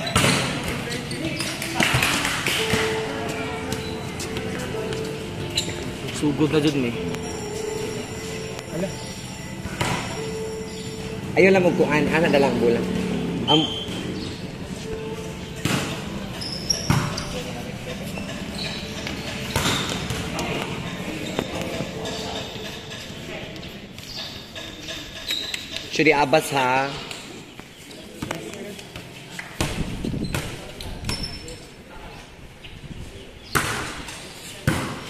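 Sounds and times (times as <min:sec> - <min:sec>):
volleyball being hit: 0:15.6 - 0:16.0, 0:19.5 - 0:20.3.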